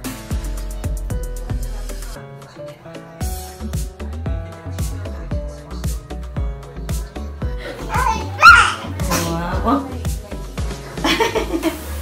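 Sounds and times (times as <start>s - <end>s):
background music with beat: 0.0s - 12.0s
toddler crying out: 7.8s - 9.0s.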